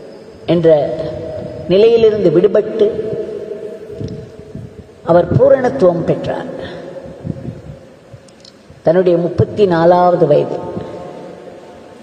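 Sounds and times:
steady recording hum: 0.0s - 12.0s.

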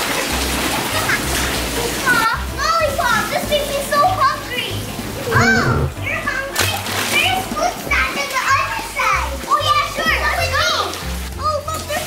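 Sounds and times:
children playing: 0.0s - 12.0s
background music with bass: 4.1s - 6.5s.

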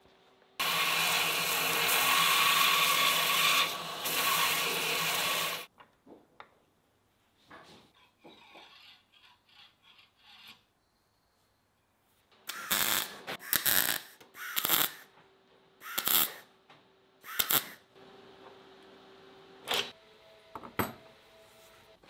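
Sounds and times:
welder arc crackle: 12.5s - 15.0s, 15.9s - 16.4s, 17.3s - 17.8s.

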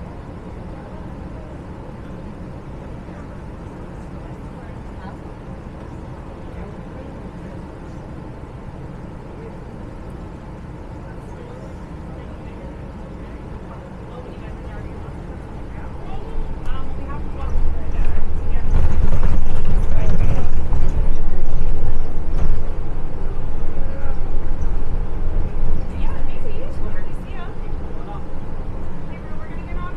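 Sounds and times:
bus engine hum: 0.0s - 29.9s
faint passenger voices: 0.0s - 29.9s.

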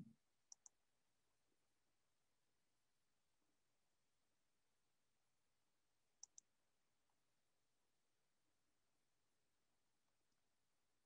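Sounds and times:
computer mouse clicks: 0.5s - 0.8s, 6.2s - 6.5s.

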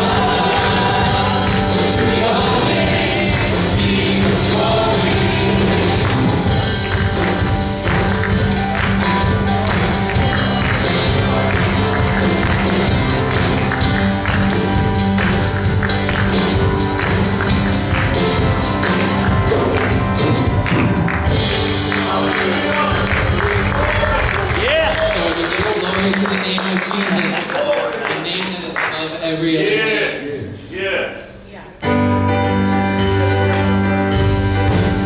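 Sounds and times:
drums: 0.0s - 27.0s, 31.8s - 35.0s
keyboard: 0.0s - 30.2s, 31.8s - 35.0s
worship band music: 0.0s - 35.0s
hand claps: 6.0s - 29.1s, 33.4s - 33.8s.

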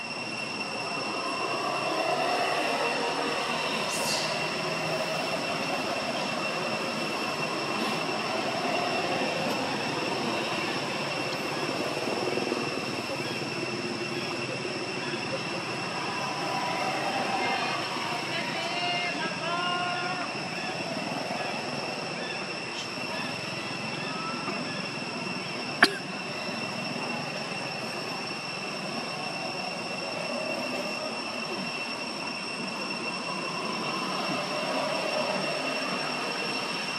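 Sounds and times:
high-pitched whine: 0.0s - 36.9s
outdoor background drone: 0.0s - 36.9s
faint voices murmuring: 0.6s - 36.9s.

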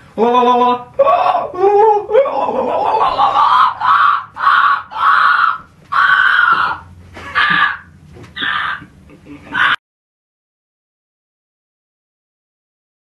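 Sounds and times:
man shrieking with laughter: 0.4s - 9.8s.

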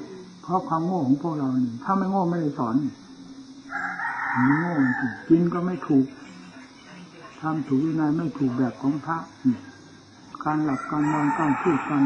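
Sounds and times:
man speaking: 0.0s - 3.0s, 4.3s - 6.4s, 7.2s - 12.0s
rooster crowing: 3.0s - 5.4s, 9.7s - 12.0s.

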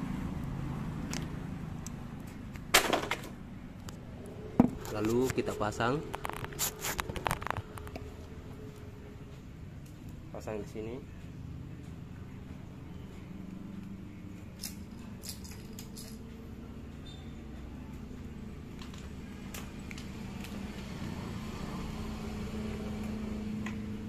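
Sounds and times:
steady low hum: 0.0s - 20.3s.

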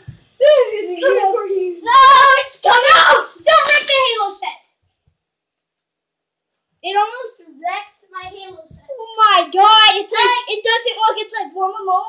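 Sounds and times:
child shouting: 0.4s - 4.6s, 9.0s - 12.0s.

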